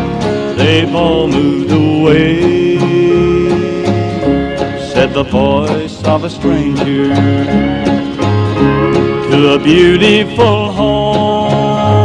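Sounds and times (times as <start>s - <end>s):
bass: 0.0s - 12.0s
strummed acoustic guitar: 0.0s - 12.0s
men singing hymn in harmony: 0.4s - 7.5s, 9.2s - 12.0s.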